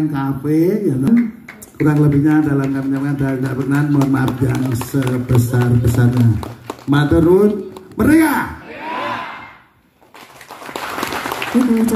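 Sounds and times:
audience applause: 1.5s - 7.5s, 10.0s - 11.9s
crowd shouting: 8.6s - 9.7s.

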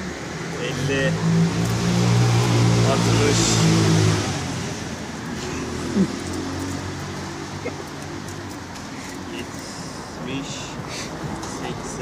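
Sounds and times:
vehicle passing: 0.0s - 12.0s.

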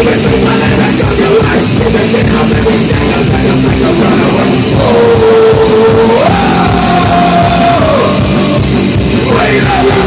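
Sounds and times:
distorted electric guitars: 0.0s - 10.0s
punk band playing loud: 0.0s - 10.0s.

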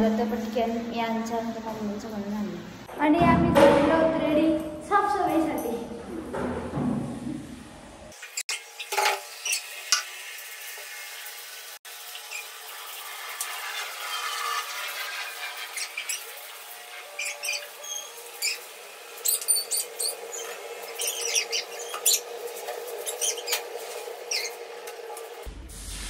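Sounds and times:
brooms sweeping hard floor: 13.3s - 26.0s.

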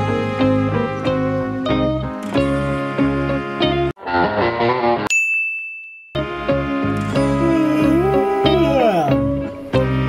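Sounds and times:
bright high ding: 5.1s - 6.2s.

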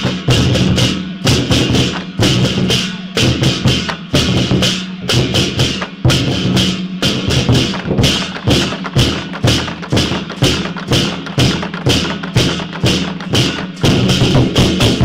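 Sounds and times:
barrel drum beaten with sticks: 0.0s - 15.0s.

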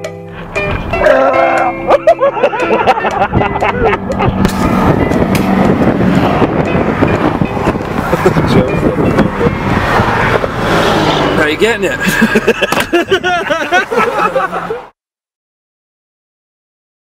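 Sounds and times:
car cabin road noise: 0.3s - 14.9s
indistinct voices: 1.0s - 1.9s.

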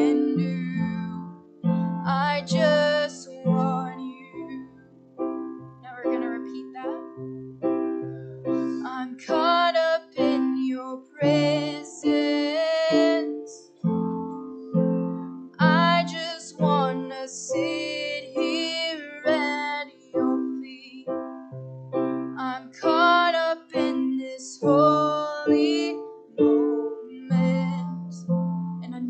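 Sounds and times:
woman singing: 0.0s - 4.8s, 5.8s - 7.2s, 8.6s - 13.9s, 15.6s - 21.3s, 22.4s - 29.0s
keyboard chords: 0.0s - 29.0s.

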